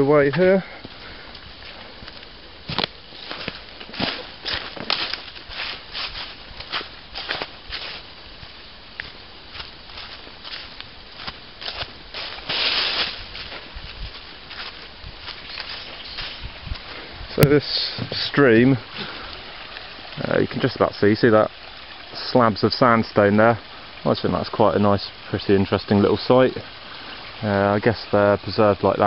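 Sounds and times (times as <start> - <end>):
footsteps crunching through dry leaves: 2.6 - 18.1
scuffle through leaves: 3.2 - 8.5, 9.5 - 17.2.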